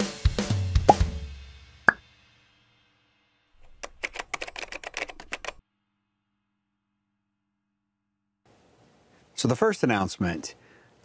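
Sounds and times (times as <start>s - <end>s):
drum kit music: 0.0s - 2.2s
rapid sharp clicks: 3.6s - 5.6s.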